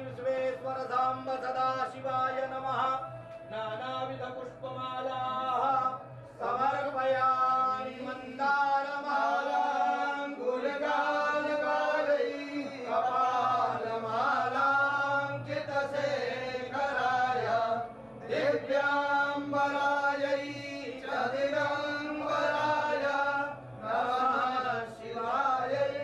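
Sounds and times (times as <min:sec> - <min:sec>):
men chanting: 0:00.0 - 0:26.0.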